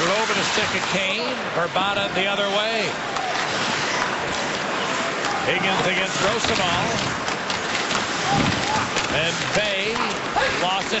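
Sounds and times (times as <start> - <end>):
arena crowd noise: 0.0 - 11.0
hockey sticks and puck knocking: 3.1 - 11.0.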